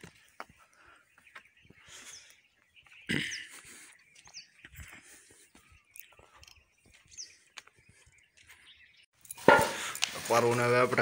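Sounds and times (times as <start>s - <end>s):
small birds chirping: 0.0s - 11.0s.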